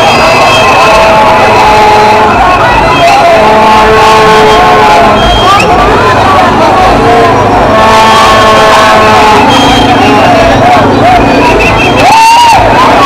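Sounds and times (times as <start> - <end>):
crowd of protesters shouting: 0.0 - 13.0
long steady tones: 0.0 - 13.0.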